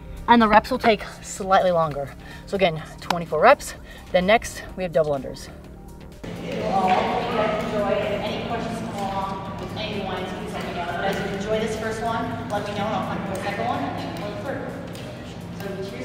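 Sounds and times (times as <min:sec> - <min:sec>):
steady low hum: 0:00.0 - 0:16.0
group talking indistinctly: 0:06.2 - 0:16.0.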